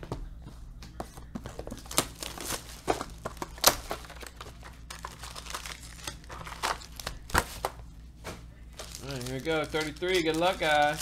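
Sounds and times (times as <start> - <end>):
shrink wrap crinkling and ripping: 1.7 - 7.8, 8.7 - 11.0.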